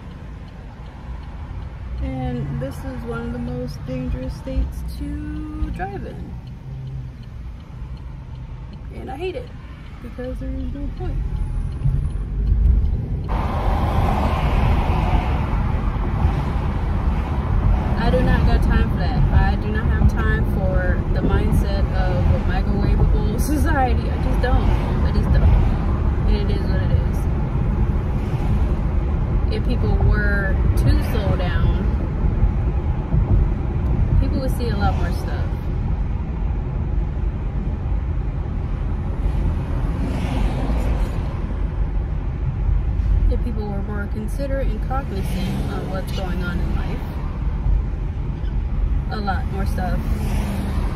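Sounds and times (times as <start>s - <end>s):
car cabin road noise rumble: 0.0s - 50.9s.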